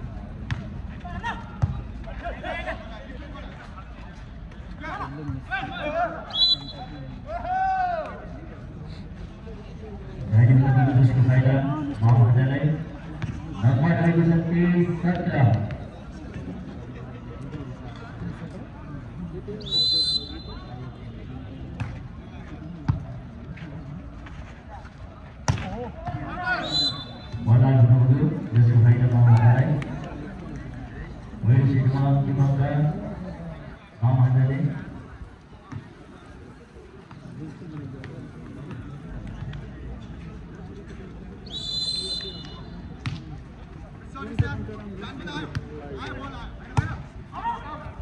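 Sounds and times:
low chatter of people: 0.0 - 48.0
referee's whistle blast: 6.3 - 7.0, 19.6 - 20.6, 26.6 - 27.4, 41.5 - 42.8.

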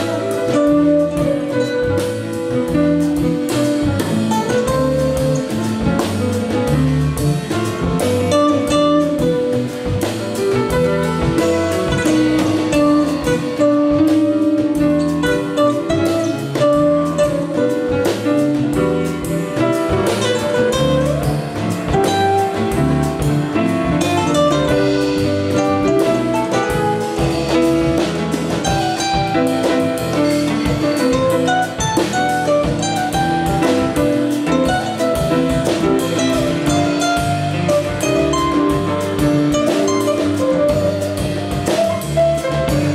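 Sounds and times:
drum kit cymbals: 0.0 - 42.9
grand piano: 0.0 - 42.9
spanish guitar playing: 0.0 - 42.9.

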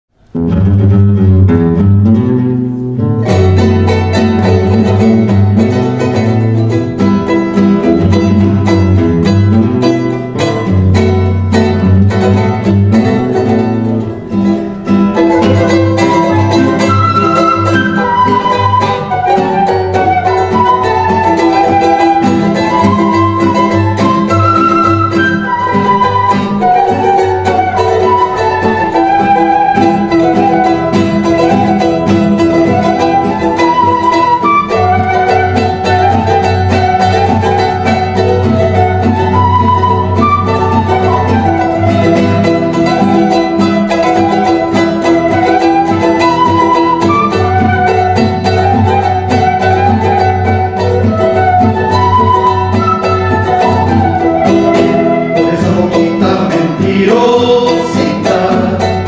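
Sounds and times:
acoustic guitar strumming: 0.1 - 59.0
small plucked string instrument: 0.1 - 59.0
flute melody: 0.4 - 59.0.

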